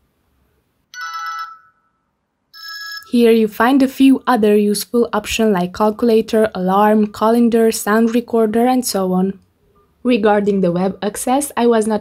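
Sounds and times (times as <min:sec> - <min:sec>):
phone ringtone chime: 0:00.9 - 0:03.2.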